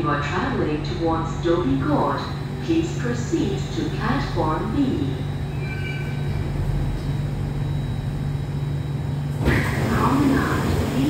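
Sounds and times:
low hum in metro carriage: 0.0 - 11.0.

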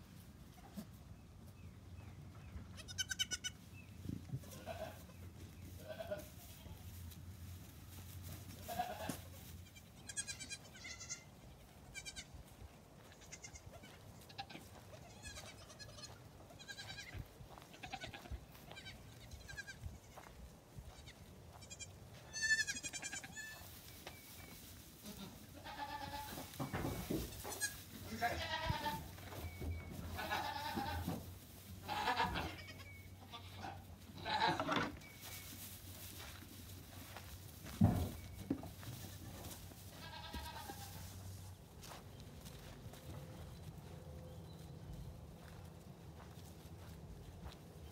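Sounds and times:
goat kids bleating: 2.6 - 3.7, 4.3 - 7.0, 8.3 - 23.8, 25.0 - 35.0, 38.9 - 42.0.

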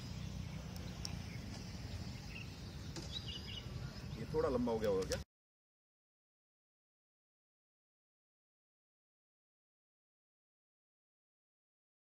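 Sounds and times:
faint bird chirps: 0.0 - 4.8.

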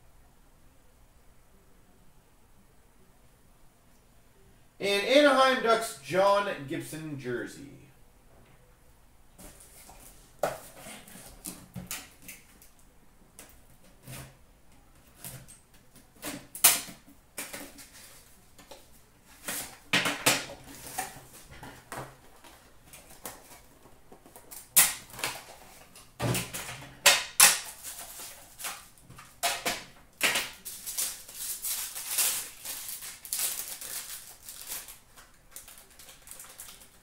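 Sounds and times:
foil pack crinkling: 20.6 - 37.0.

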